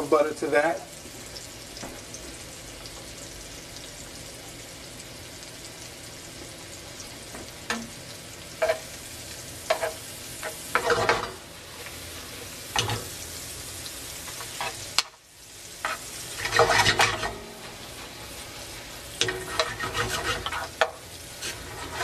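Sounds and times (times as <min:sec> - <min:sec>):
vegetables sizzling in butter: 0:00.0 - 0:22.0
utensil scraping a pan: 0:09.7 - 0:12.0, 0:14.3 - 0:14.9, 0:15.8 - 0:18.5, 0:19.2 - 0:22.0.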